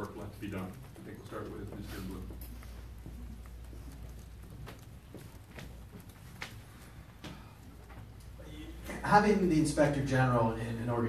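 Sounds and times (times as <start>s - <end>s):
footsteps: 0.0s - 9.2s
low room hum: 0.0s - 11.0s.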